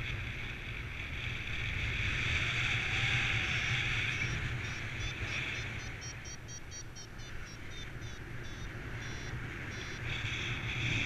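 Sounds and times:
wind noise: 0:00.0 - 0:11.0
variometer beeping: 0:03.6 - 0:10.8.

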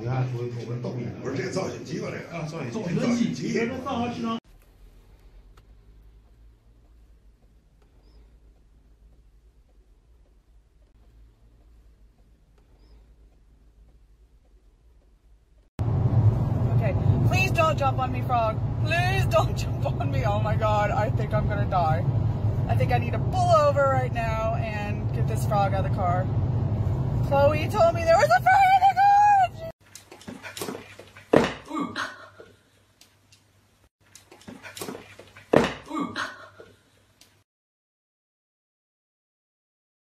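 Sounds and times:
car cabin road noise rumble: 0:13.5 - 0:29.7.

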